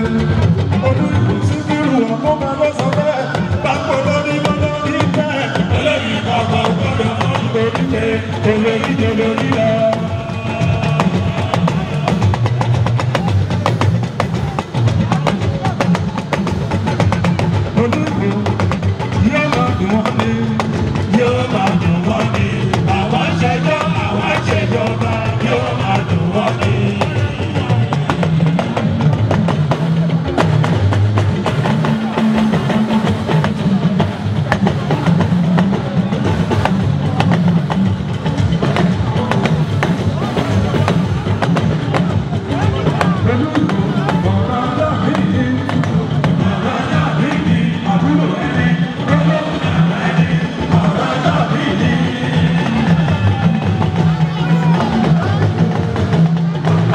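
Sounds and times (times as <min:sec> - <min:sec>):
drums and percussion: 0:00.0 - 0:56.9
live band music: 0:00.0 - 0:56.9
voice through microphone: 0:38.9 - 0:56.9.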